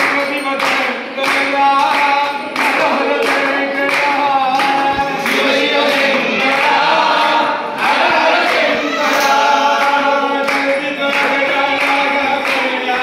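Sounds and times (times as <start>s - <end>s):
hands clapping: 0.0s - 13.0s
men singing devotional song: 0.0s - 13.0s.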